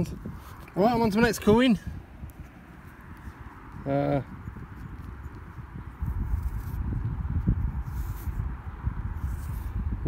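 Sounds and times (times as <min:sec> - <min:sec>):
low rumbling on microphone: 0:01.8 - 0:10.0.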